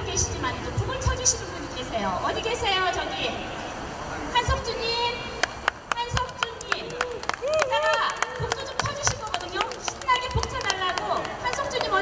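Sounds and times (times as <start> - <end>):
people talking: 0.0 - 3.4, 5.9 - 12.0.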